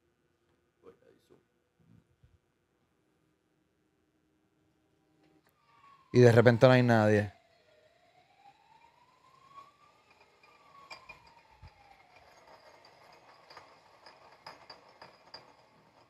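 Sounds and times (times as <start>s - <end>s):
siren wail through phone speaker: 5.5s - 12.5s.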